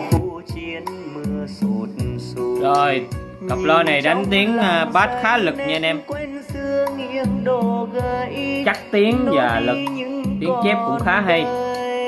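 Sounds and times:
bolero song over speakers: 0.0 - 12.0
strong bass notes: 1.3 - 11.6.

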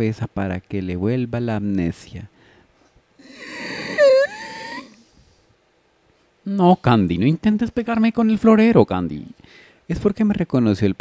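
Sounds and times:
person groaning in frustration: 3.2 - 5.0
vocal squeak: 3.2 - 5.0.

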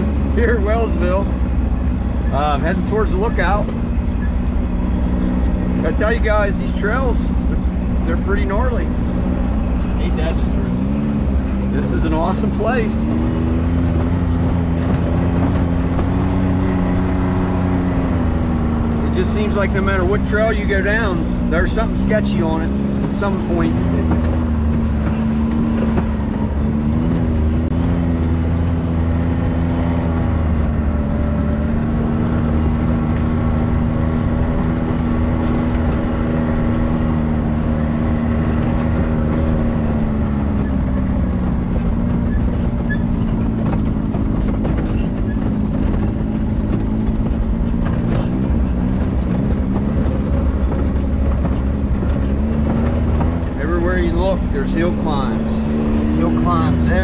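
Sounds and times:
off-road vehicle engine running: 0.0 - 57.0.

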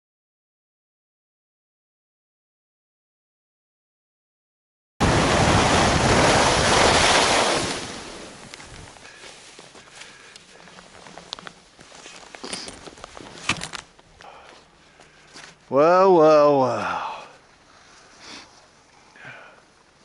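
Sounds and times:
snow crunches and gear clicks: 6.8 - 15.7.

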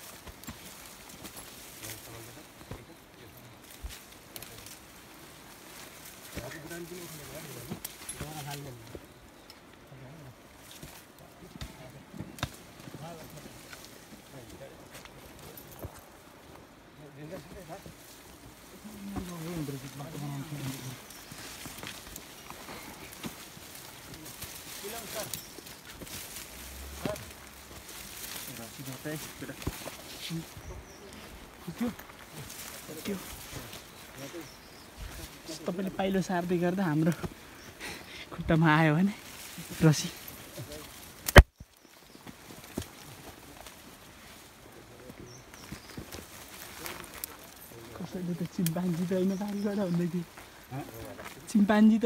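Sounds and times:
branches and leaves crackling: 0.0 - 52.0
footsteps in brush: 0.0 - 52.0.

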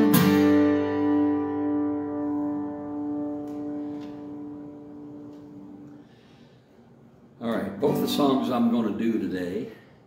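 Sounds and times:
acoustic guitar chord ringing: 0.0 - 6.2.

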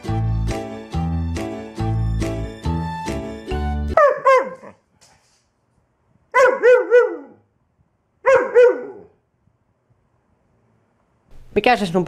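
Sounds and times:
background music: 0.0 - 4.0
dog barking: 4.0 - 4.8, 6.3 - 7.4, 8.2 - 9.2.

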